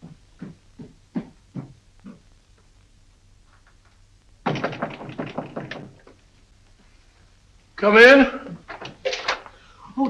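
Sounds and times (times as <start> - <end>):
knocking on a door: 4.4 - 6.2.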